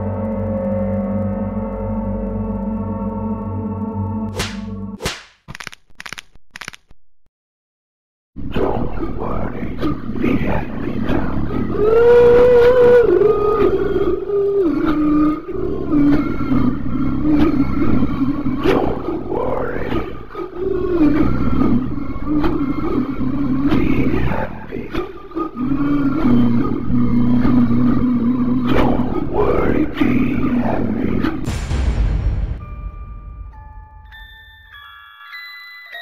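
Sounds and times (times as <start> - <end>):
monstrous growling and moaning voice: 9.8 - 31.1.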